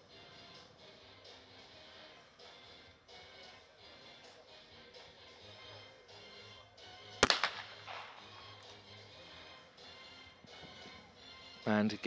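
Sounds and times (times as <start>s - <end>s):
faint background music: 0.0s - 12.0s
shotgun shot: 7.2s - 8.5s.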